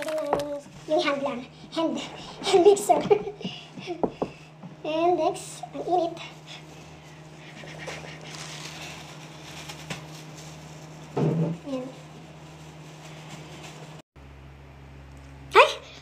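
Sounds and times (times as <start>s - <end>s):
plastic gloves rustling: 0.0s - 1.4s, 6.2s - 14.0s
low electrical hum: 0.0s - 16.0s.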